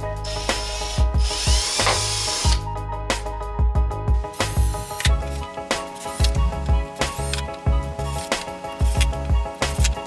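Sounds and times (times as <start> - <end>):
background music with steady beat: 0.0 - 10.0
cordless drill boring: 0.2 - 2.6.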